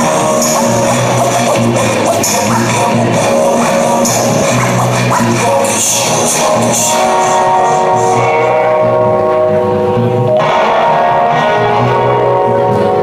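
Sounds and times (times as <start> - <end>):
live band playing: 0.0 - 13.0
sustained bass notes: 0.0 - 13.0.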